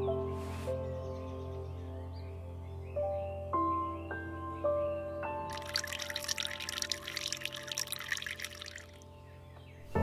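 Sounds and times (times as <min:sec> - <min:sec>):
water pouring into teapot: 0:05.5 - 0:09.0.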